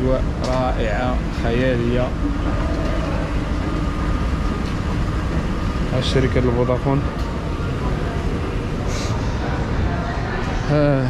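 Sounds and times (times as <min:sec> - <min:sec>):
escalator rumble: 0:00.0 - 0:11.0
faint steady whine: 0:00.0 - 0:11.0.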